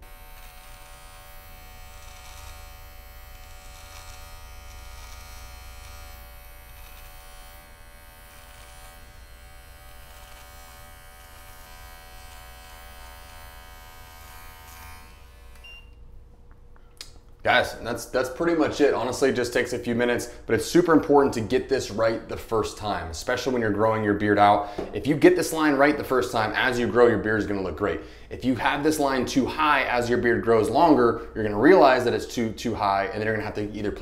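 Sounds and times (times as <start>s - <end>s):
electric beard trimmer buzzing: 0.0s - 16.0s.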